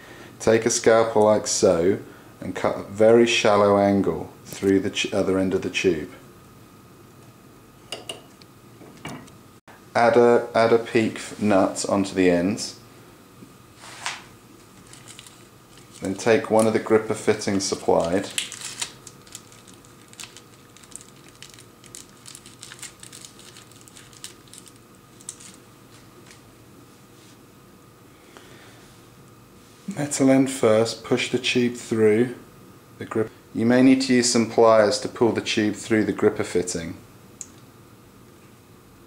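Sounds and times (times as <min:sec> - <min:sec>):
low room hiss: 0:00.0 - 0:39.0
plastic bag crinkling: 0:14.7 - 0:26.4.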